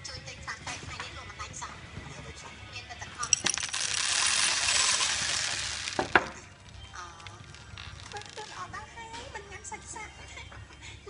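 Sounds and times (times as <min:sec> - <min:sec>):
small hard objects clinking: 0:03.2 - 0:08.6.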